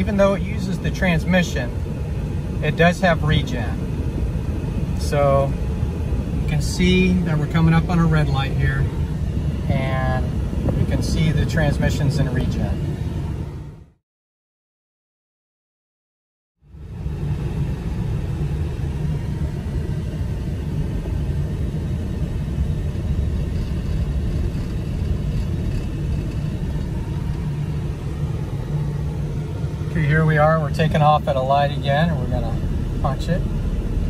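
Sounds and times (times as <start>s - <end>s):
tyre and drivetrain rumble: 0.0s - 13.4s, 17.1s - 34.0s.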